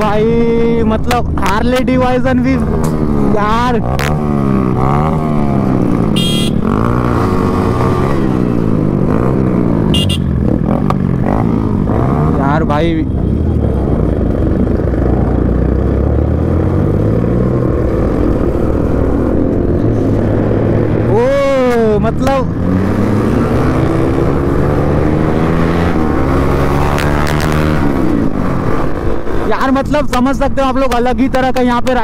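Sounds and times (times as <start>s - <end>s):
motorcycle engine accelerating: 2.4s - 29.5s.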